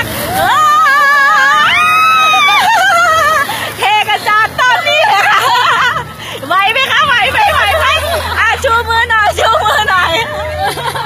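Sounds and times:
people shouting and chattering: 0.0 - 11.0.

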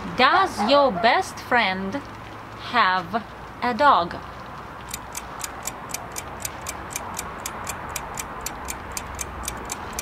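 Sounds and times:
clock ticking: 4.8 - 10.0.

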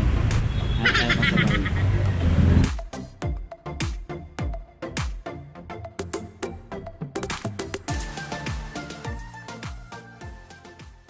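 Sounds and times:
traffic rumble: 0.0 - 2.7.

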